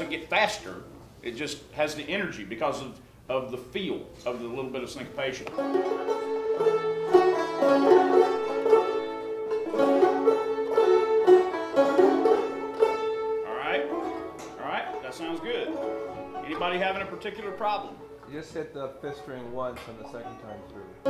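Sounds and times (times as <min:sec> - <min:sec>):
banjo playing old-time tune: 0:04.5 - 0:21.0.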